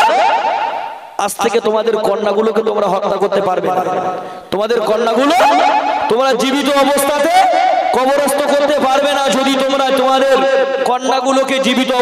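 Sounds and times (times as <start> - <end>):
man speaking: 1.2 - 12.0.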